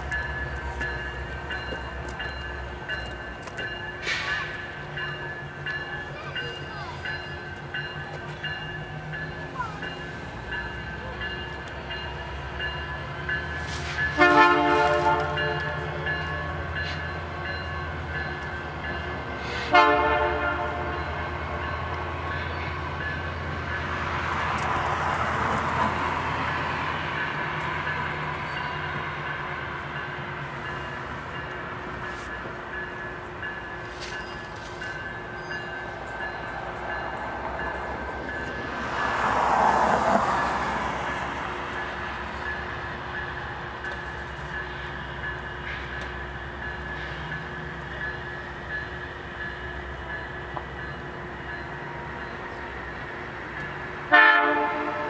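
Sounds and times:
diesel locomotive running: 0.0 - 55.0
rush of train noise: 0.0 - 55.0
train horn blasts: 13.8 - 17.0, 19.4 - 21.6, 54.0 - 55.0.

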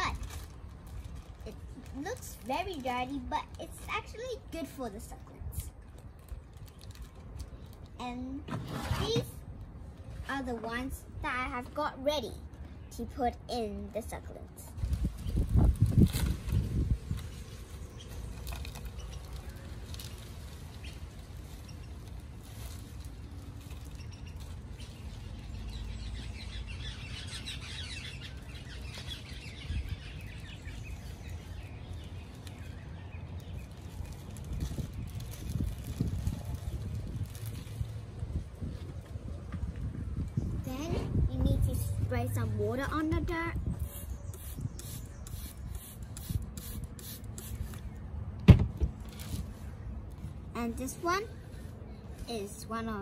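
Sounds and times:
birds chirping: 23.6 - 35.2, 41.6 - 46.4.

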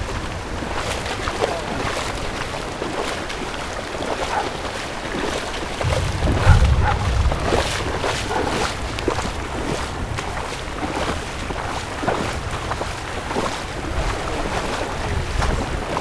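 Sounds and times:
footsteps splashing through water: 0.0 - 16.0
rushing water: 0.0 - 16.0
wind buffeting microphone: 0.0 - 16.0.

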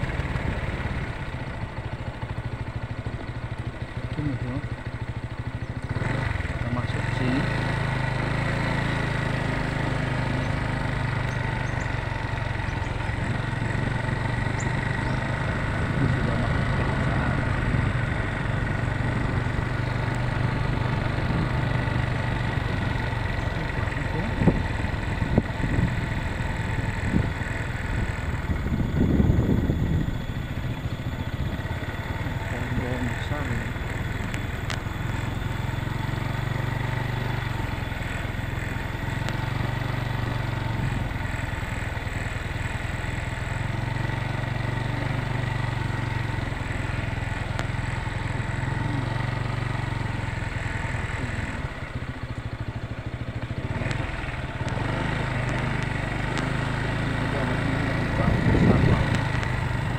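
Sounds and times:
motorcycle engine cruising: 0.0 - 59.9.

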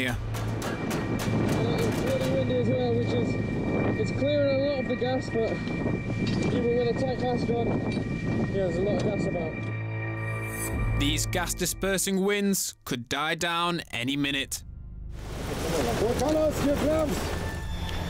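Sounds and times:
background music with held tones: 0.0 - 12.8, 16.3 - 18.0
people talking: 1.6 - 3.4, 4.0 - 5.6, 6.5 - 7.8, 8.5 - 9.6, 11.0 - 14.6, 15.7 - 17.2.

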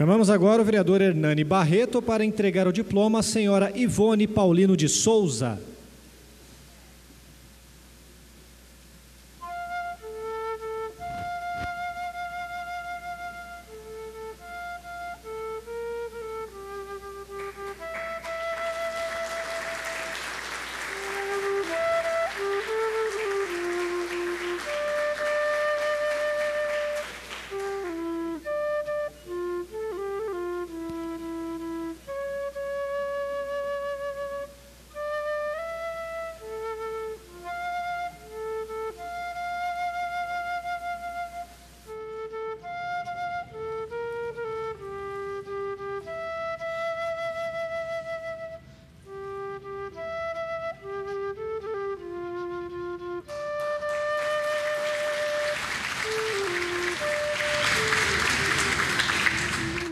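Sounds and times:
flute melody: 0.0 - 0.8, 9.4 - 59.9
applause: 17.4 - 27.9, 53.7 - 59.9.

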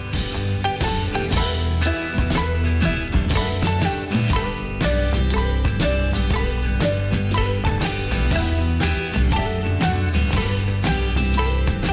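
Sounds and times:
background music with steady beat: 0.0 - 11.9.

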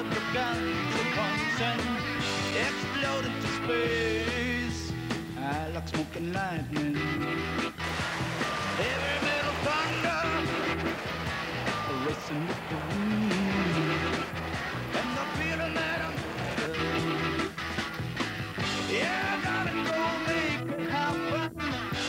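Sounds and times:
rock music: 0.0 - 22.0.

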